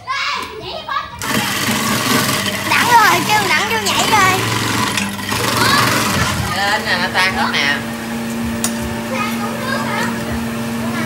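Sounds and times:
motor hum: 0.4s - 11.0s
ice shaver grinding ice: 1.2s - 11.0s
voices: 2.6s - 11.0s.

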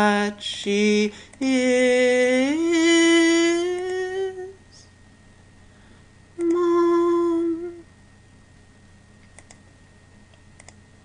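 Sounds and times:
person humming a held note: 6.4s - 7.9s.

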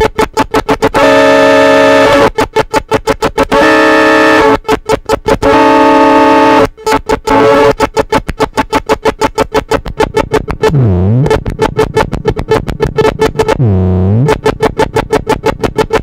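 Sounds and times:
keyboard stuttering pulses: 0.0s - 1.0s, 6.9s - 16.0s
held buzzing chords: 8.8s - 15.8s.

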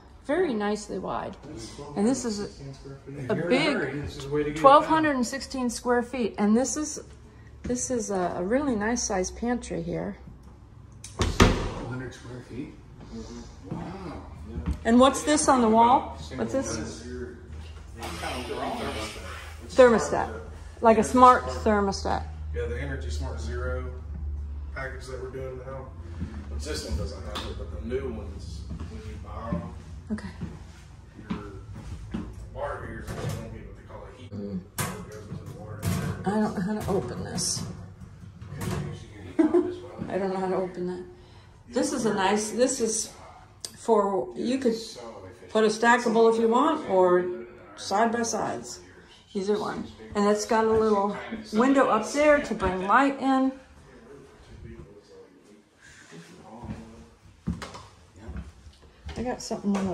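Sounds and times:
people conversing: 0.0s - 59.9s
quiet indistinct voices: 16.2s - 21.8s.

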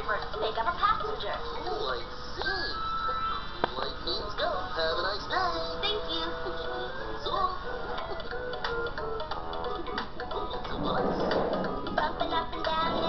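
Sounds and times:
children's tv music with voices: 0.0s - 13.0s.

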